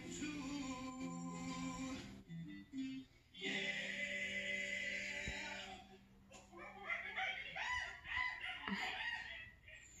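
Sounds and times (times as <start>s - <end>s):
person laughing: 8.1s - 10.0s.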